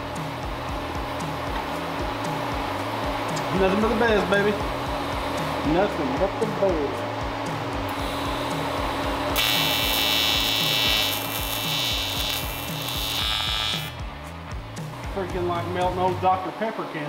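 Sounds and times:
welder arc buzzing: 0.0s - 16.3s.

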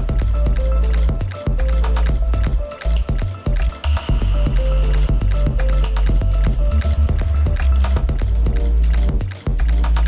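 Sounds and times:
clicky electronic percussion: 0.0s - 10.0s
deep bass: 0.0s - 10.0s.

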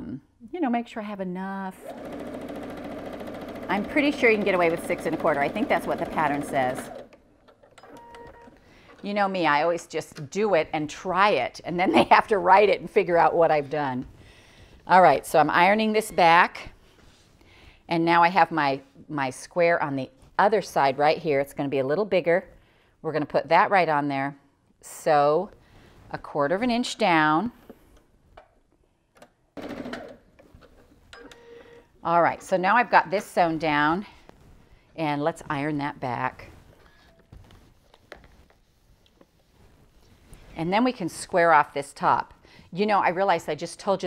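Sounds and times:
electric sewing machine whir: 1.8s - 7.2s.

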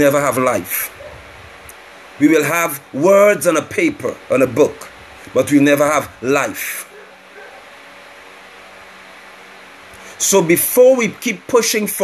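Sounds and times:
faint hum: 0.0s - 12.0s
steady low hiss: 0.0s - 12.0s.

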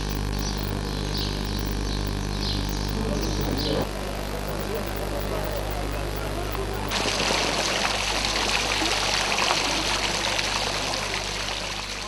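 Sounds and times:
steady low hum: 0.0s - 6.9s
fountain water splashing: 6.9s - 12.0s.

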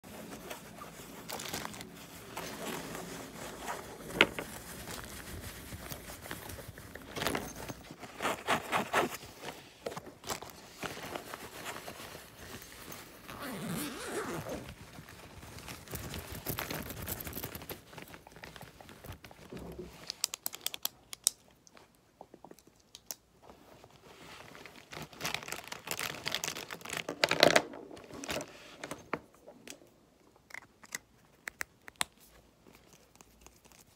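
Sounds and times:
fabric rustling: 0.0s - 20.0s
hands handling pencil case: 0.1s - 14.8s
zipper opening: 13.2s - 14.8s.

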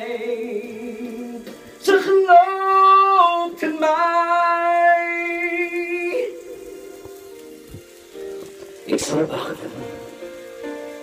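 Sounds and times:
man singing karaoke: 0.0s - 7.0s, 8.8s - 10.2s.

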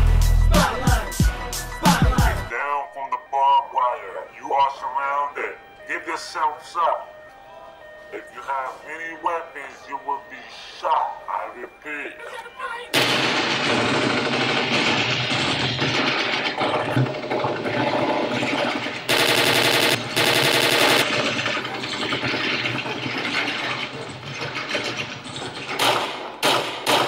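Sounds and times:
machine-gun fire: 12.9s - 16.7s, 19.1s - 21.6s, 25.8s - 27.0s.

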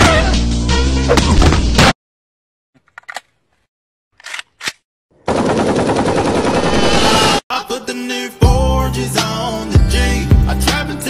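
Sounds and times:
voice or music: 7.1s - 11.0s.

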